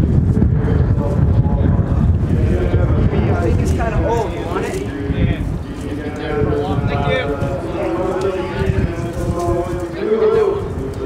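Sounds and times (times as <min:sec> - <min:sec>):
faint voices talking: 0:00.0 - 0:11.0
wind buffeting microphone: 0:00.0 - 0:11.0.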